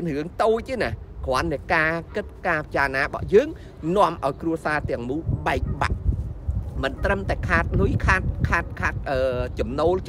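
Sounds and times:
man talking: 0.0 - 6.0, 6.7 - 10.0.

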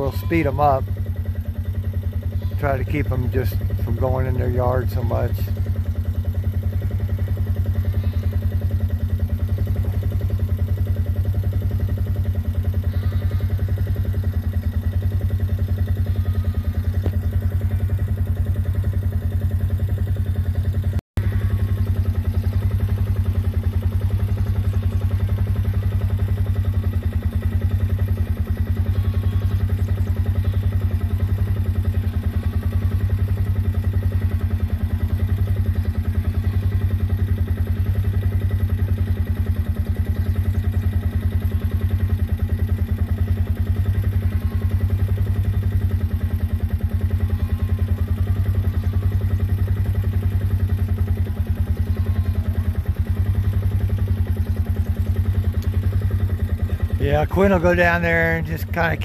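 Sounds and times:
small engine running steadily: 0.0 - 59.0.

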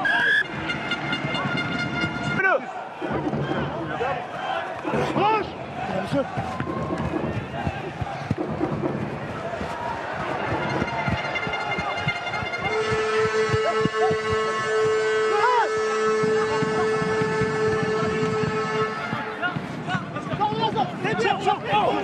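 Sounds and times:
crowd noise and shouting: 0.0 - 22.0
stadium hooter long note: 10.4 - 19.5.

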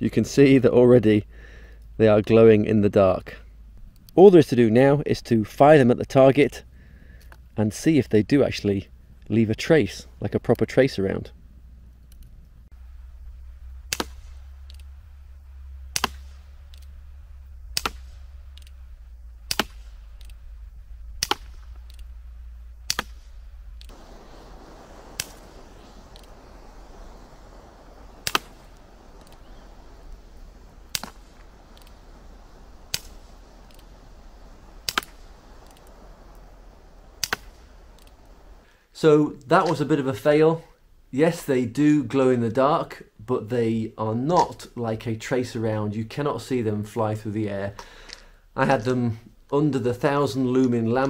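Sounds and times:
air pistol shots: 15.9 - 16.4, 19.4 - 20.3, 21.2 - 21.8, 28.2 - 29.4, 30.2 - 36.4, 37.0 - 38.1.

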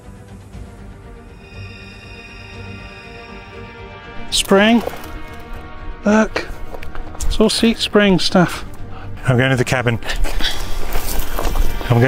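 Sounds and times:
footsteps crunching on loose rocks: 10.1 - 12.0
brush rustling: 10.3 - 12.0.

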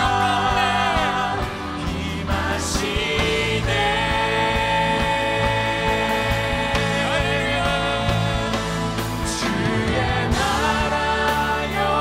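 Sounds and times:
worship band steady beat: 0.0 - 12.0.

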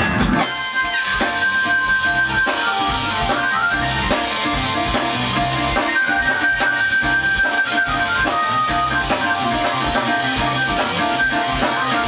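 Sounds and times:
jazz-funk band playing: 0.0 - 12.0.

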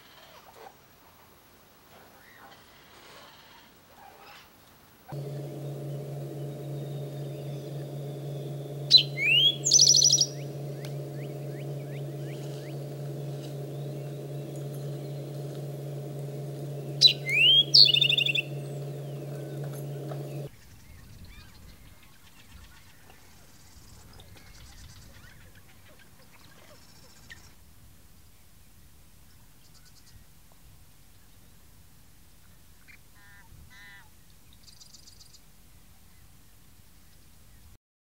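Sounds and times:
bird singing: 5.2 - 20.5
low steady rumble: 5.2 - 20.5
steady low hum: 5.2 - 20.5
high-pitched bird trill: 8.9 - 10.4, 17.0 - 18.5.

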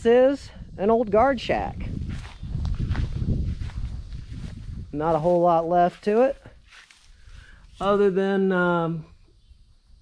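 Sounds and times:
footsteps on grass: 1.8 - 8.3.

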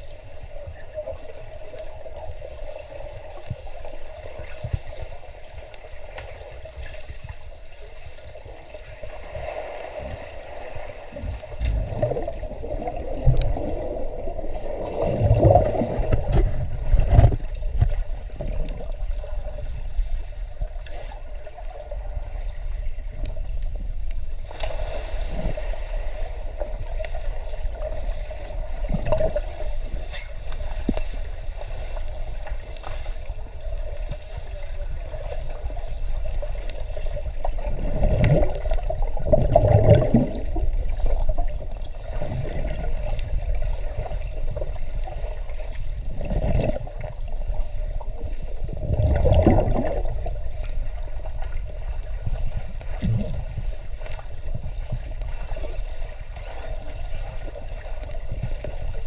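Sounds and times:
churning water and bubbles: 0.0 - 59.0
muffled underwater rumble: 0.0 - 59.0.

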